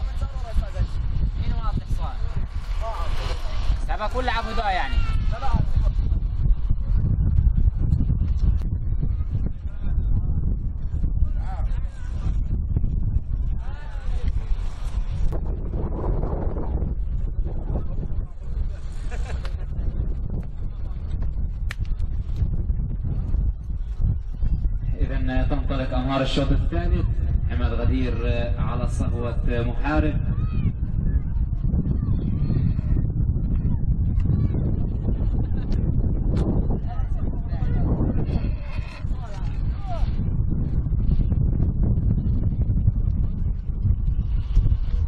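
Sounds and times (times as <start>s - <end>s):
people talking: 0.0s - 5.9s, 36.6s - 40.2s
steady low rumble: 0.0s - 45.0s
wind buffeting microphone: 0.0s - 45.0s.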